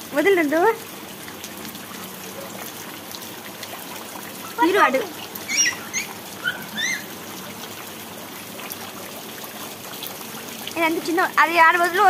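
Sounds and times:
rain falling on water: 0.0s - 12.0s
high-pitched chirps: 5.5s - 7.1s.

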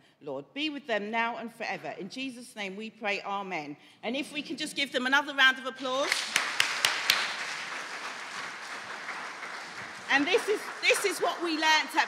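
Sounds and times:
congregation applauding: 6.0s - 12.0s.

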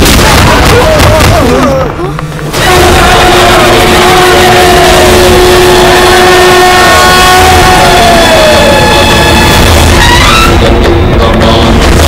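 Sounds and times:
film background score: 0.0s - 12.0s.

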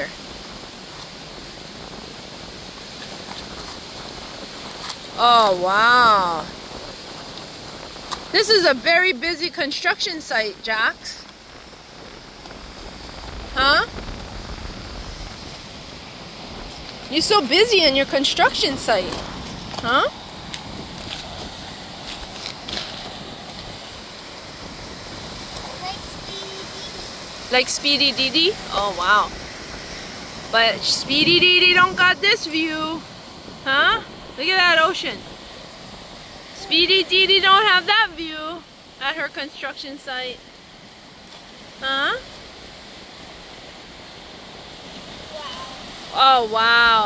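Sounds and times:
outdoor background noise: 0.0s - 47.0s
wind hiss: 0.0s - 47.0s.

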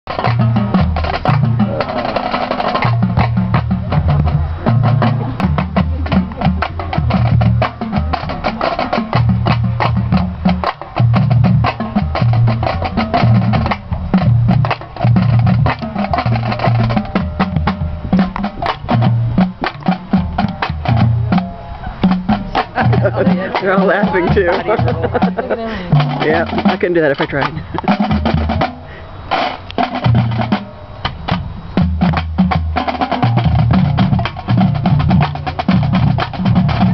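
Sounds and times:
snare drum strokes: 0.1s - 36.9s
bass drums hitting: 2.7s - 28.8s.

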